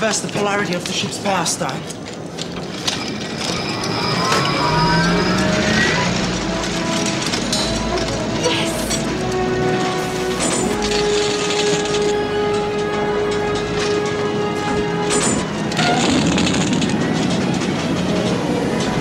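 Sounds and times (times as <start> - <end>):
background score music: 0.0 - 19.0
low rumble: 3.2 - 11.2
sci-fi engine whine powering up: 3.6 - 7.0.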